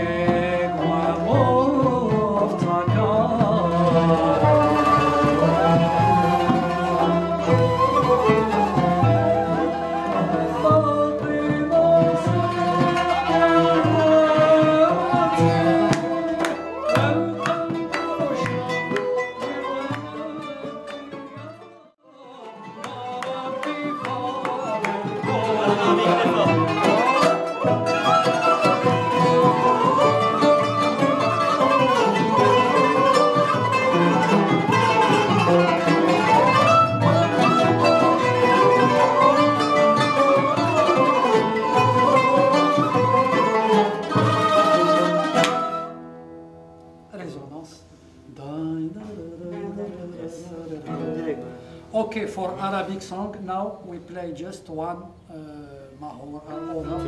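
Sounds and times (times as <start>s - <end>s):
ney flute melody: 0.0s - 47.0s, 56.4s - 57.0s
plucked oud notes: 0.0s - 53.3s, 56.4s - 57.0s.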